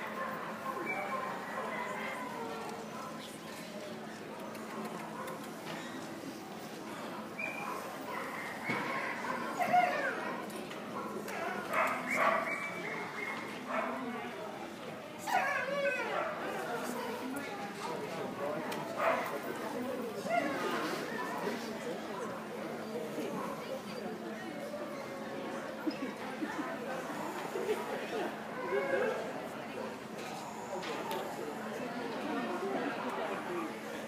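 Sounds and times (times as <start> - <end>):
people talking: 0.0 - 34.0
dog barking: 11.7 - 12.7.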